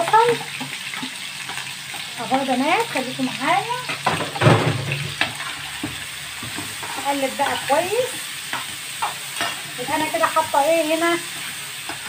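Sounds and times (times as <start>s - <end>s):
onions sizzling in hot fat: 0.0s - 12.0s
spoon scraping a pot: 5.0s - 10.5s.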